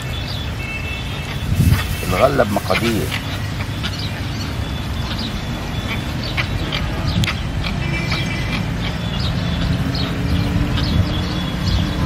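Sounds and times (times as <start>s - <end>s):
sharp bird calls: 0.0s - 12.0s.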